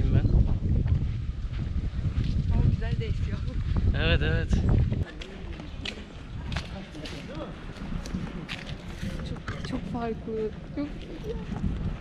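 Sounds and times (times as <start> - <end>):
footsteps on pavement: 0.4 - 4.0, 4.6 - 12.0.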